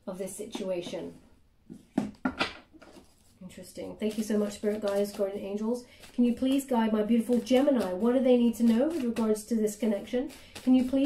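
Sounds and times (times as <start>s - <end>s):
cards being shuffled: 2.7s - 11.0s.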